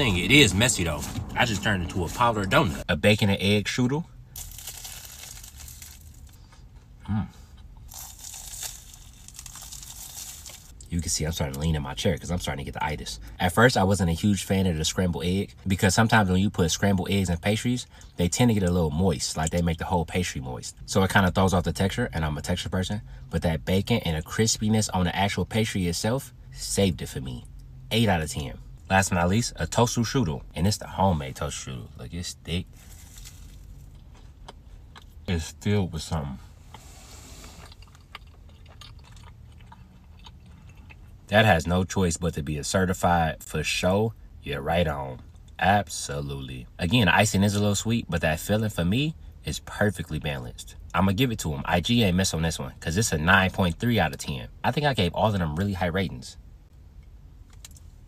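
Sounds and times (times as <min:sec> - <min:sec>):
low hum in car cabin: 0:00.0 - 0:58.0
chewing crunchy pastry: 0:04.4 - 0:06.5, 0:07.6 - 0:10.9, 0:32.7 - 0:35.3, 0:36.7 - 0:41.3.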